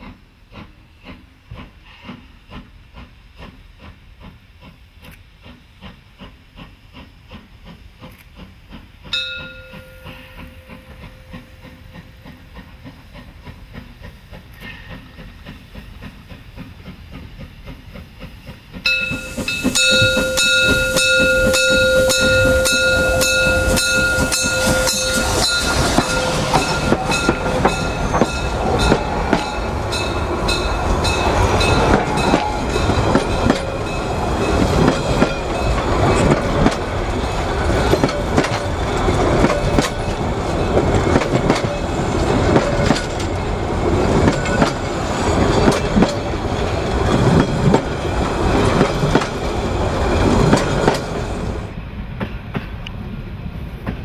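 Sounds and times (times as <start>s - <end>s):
wheels clicking over rail joints: 0.0s - 53.0s
train coaches rumbling past: 0.0s - 54.0s
steam train whistle: 18.9s - 30.1s.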